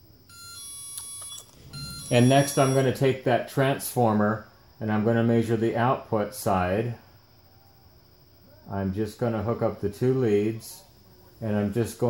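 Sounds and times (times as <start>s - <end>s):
analyzer beeping: 0.3s - 3.2s.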